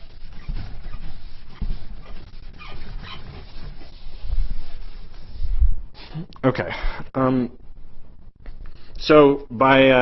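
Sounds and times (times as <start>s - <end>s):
eraser squeaks: 0.0s - 4.0s
chalkboard eraser rubbing: 0.0s - 6.2s.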